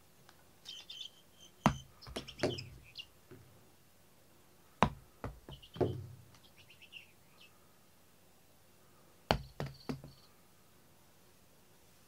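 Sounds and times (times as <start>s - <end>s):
ball rattling as it rolls: 5.3s - 6.2s.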